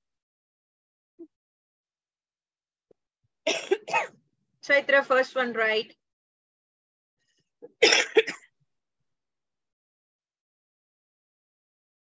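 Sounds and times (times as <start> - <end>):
person coughing: 3.5 - 4.2, 7.6 - 8.5.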